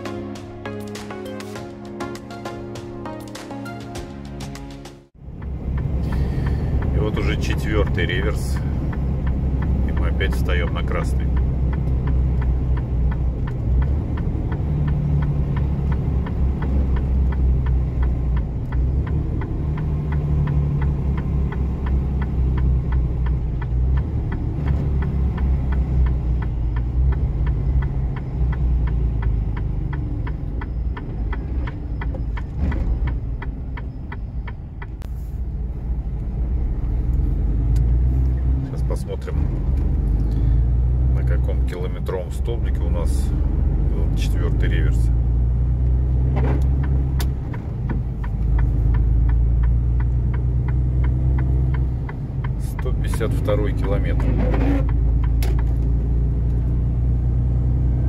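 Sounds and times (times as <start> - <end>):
truck diesel engine rumble: 5.1 - 58.0
fast faint ticking: 5.3 - 35.0, 46.8 - 54.2.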